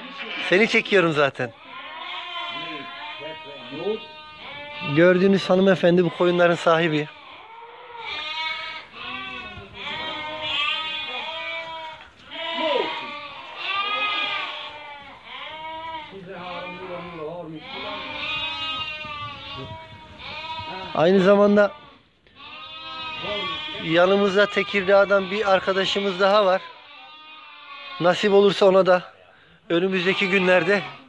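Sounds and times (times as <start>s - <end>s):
sheep bleating: 0.0s - 29.0s, 29.7s - 31.0s.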